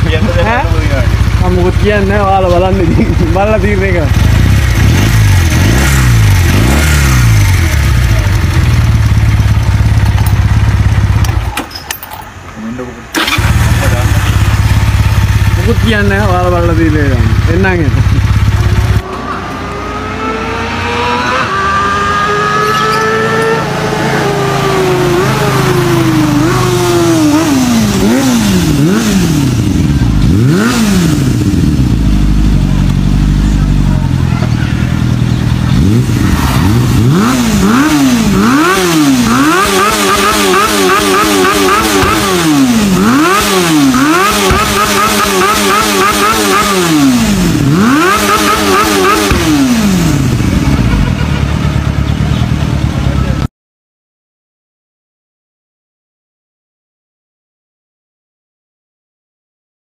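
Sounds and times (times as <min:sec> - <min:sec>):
motorcycle engine revving: 0:00.0 - 0:11.7, 0:13.1 - 0:53.5
another motorcycle engine: 0:00.0 - 0:53.5.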